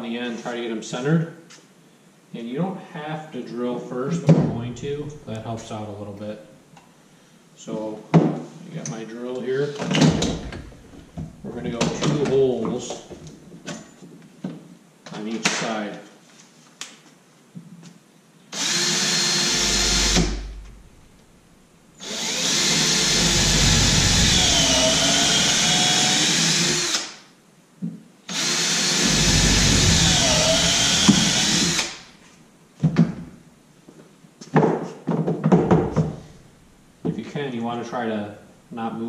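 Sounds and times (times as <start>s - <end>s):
power drill whining: 18.5s - 20.7s, 22.0s - 27.2s, 28.3s - 32.1s.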